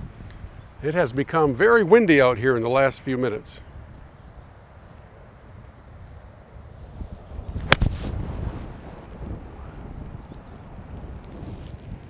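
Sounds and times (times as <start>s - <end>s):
wind rumbling on microphone: 0.0s - 12.0s
golf club hitting ball: 7.6s - 8.0s.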